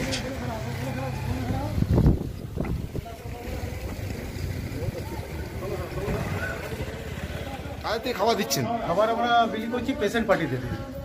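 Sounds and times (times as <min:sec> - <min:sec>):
wind buffeting microphone: 0:01.7 - 0:03.4.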